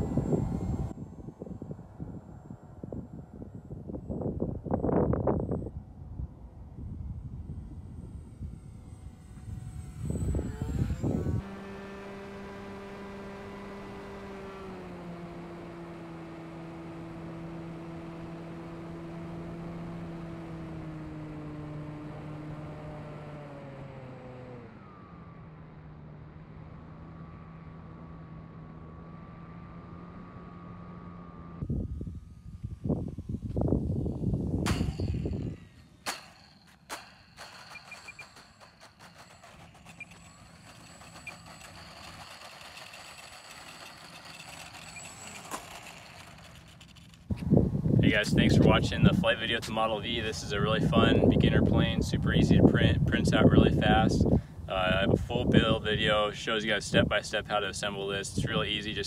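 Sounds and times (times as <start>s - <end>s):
wind buffeting microphone: 0.0s - 12.6s, 31.6s - 36.0s, 47.3s - 59.0s
electric motor and propeller whine: 0.0s - 59.0s.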